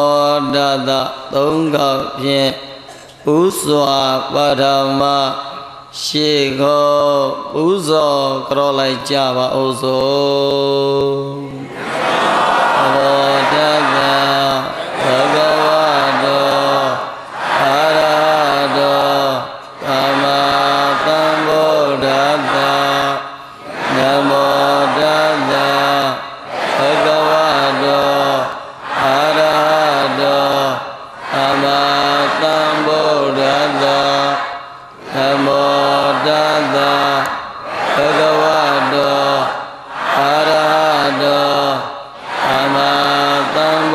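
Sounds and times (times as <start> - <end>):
monk chanting: 0.0 - 11.9, 12.8 - 43.9.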